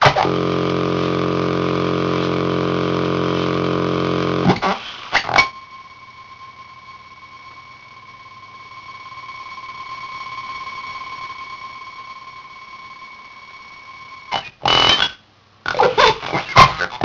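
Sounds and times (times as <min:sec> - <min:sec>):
held electronic tone: 0:00.0 - 0:15.2
glitched toy voice fragments: 0:14.4 - 0:17.0.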